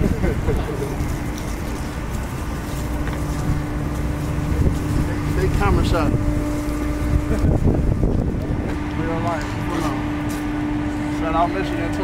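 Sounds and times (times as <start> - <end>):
wind rumbling on microphone: 0.0 - 11.0
indistinct voices: 0.0 - 12.0
steady low hum: 0.0 - 12.0.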